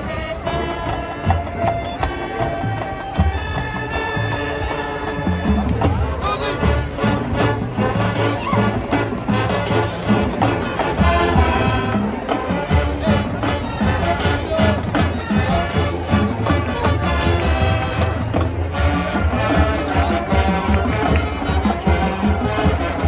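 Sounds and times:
marching band brass: 0:00.0 - 0:23.0
steady drum beat: 0:05.2 - 0:23.0.

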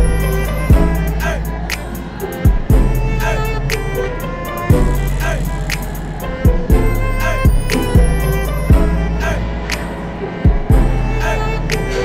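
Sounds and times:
percussion ticks: 0:00.0 - 0:08.9
deep sliding bass notes: 0:00.0 - 0:12.0.

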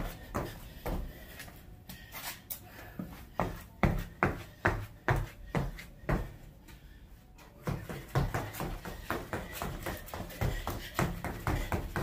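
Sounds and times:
sneakered feet thudding on concrete: 0:00.0 - 0:06.5, 0:07.5 - 0:12.0.

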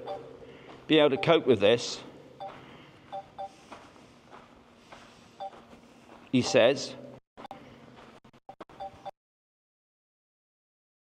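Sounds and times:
remote controller beeps: 0:00.0 - 0:00.3, 0:01.1 - 0:01.4
faint footsteps: 0:00.0 - 0:01.4, 0:02.4 - 0:06.6, 0:07.4 - 0:08.4.

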